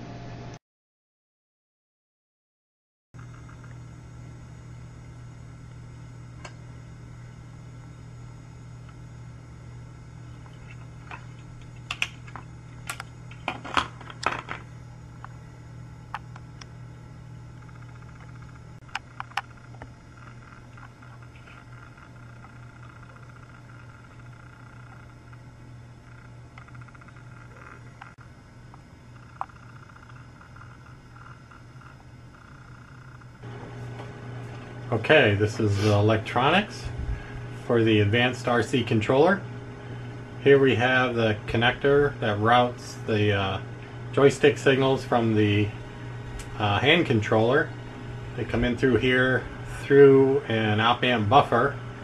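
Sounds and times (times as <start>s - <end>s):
steady low hum: 3.2s - 52.0s.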